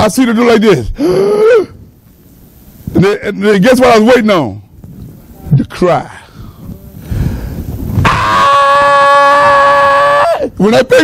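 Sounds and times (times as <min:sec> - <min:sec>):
man imitating a baby crying: 0:01.0 - 0:01.8, 0:09.1 - 0:10.6.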